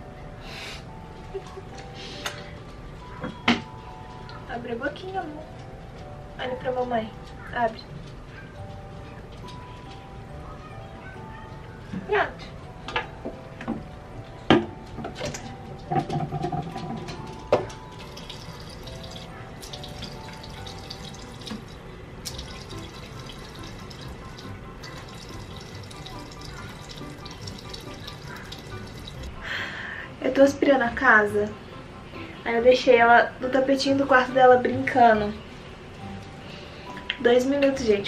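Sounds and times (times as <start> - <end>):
background music: 0.0 - 38.0
water running from sink tap: 17.9 - 29.4.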